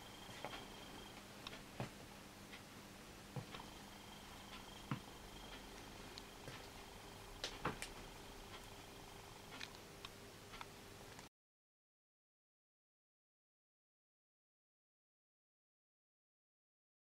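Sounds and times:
thin high whine: 0.0 - 1.3, 3.4 - 9.6
faint steady hum: 0.0 - 11.3.

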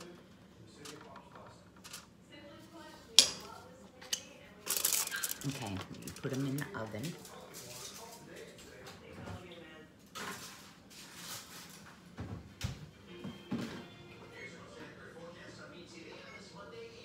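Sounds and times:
faint voices: 0.0 - 10.4
background music: 12.9 - 15.4.

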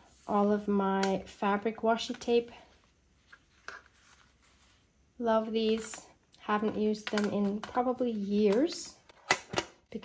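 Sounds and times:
faint rustles of tape: 2.5 - 4.9.

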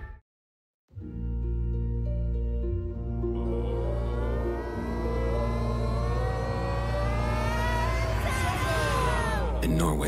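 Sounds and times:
low music drone: 1.0 - 10.0.

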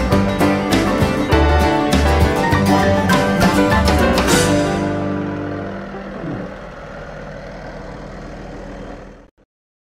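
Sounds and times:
tractor diesel engine idling: 0.0 - 9.4.

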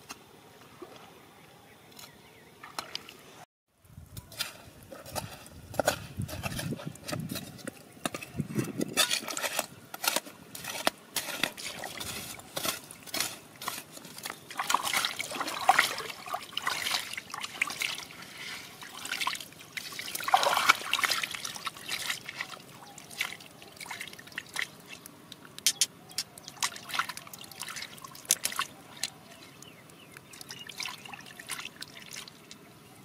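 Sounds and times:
water splashing and trickling: 2.0 - 33.0
metal trowel scraping stony mud: 4.2 - 15.2.

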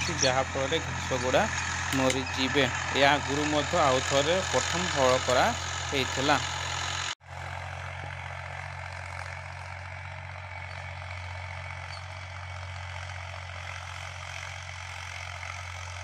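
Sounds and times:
tractor diesel engine droning: 0.0 - 16.0.

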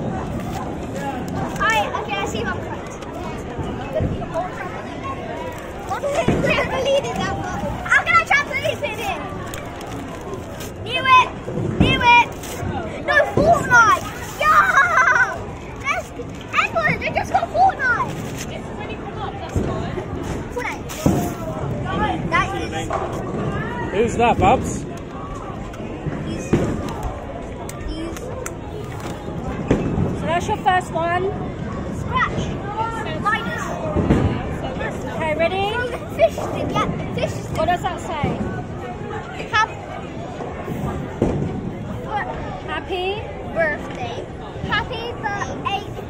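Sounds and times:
background voices and hubbub: 0.0 - 46.0
bowling alley background noise: 0.0 - 46.0.

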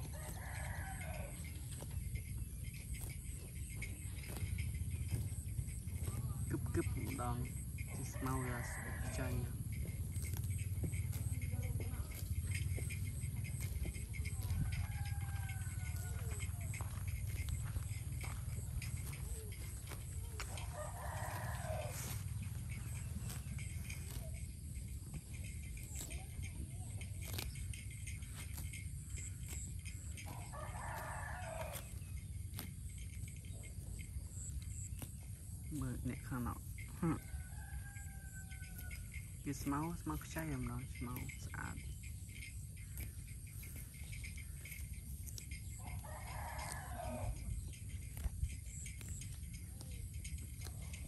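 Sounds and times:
rooster crowing: 0.0 - 1.5, 8.2 - 9.4, 14.2 - 17.0, 20.4 - 22.4, 30.2 - 32.0, 37.0 - 39.4, 45.7 - 47.6
steady low rumble: 1.4 - 30.3.

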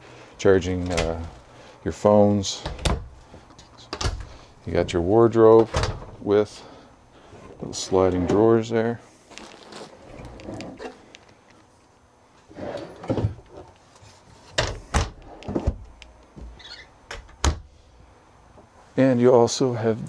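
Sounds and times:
drawers sliding and rustling: 7.3 - 8.6, 9.4 - 11.0, 12.4 - 15.8.

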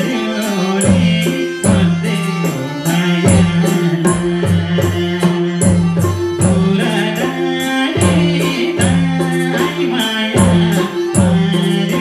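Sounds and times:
hand drums: 0.0 - 12.0
held chords: 0.0 - 12.0
high rattling percussion: 0.0 - 12.0
man singing: 0.0 - 12.0.

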